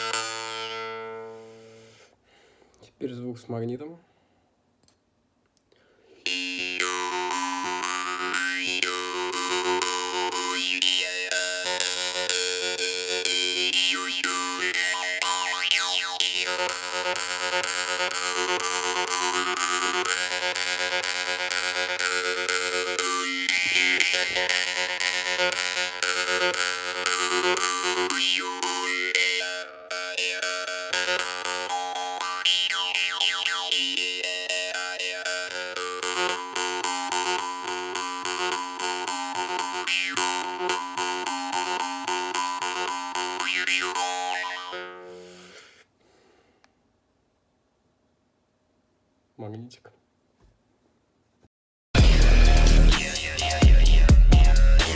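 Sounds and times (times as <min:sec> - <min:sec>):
jew's harp drone: 0:00.0 - 0:02.1, 0:06.0 - 0:45.8, 0:52.0 - 0:54.9.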